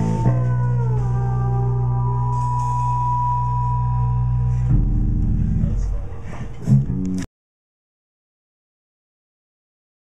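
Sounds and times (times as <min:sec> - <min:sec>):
high steady tone: 0:00.0 - 0:05.0
low electric bass notes: 0:00.0 - 0:07.3.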